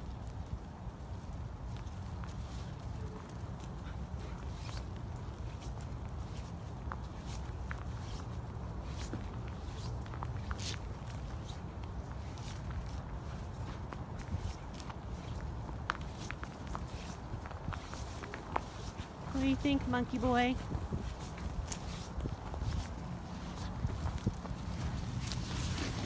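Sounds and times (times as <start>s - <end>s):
footsteps on dry leaves: 0.0s - 26.0s.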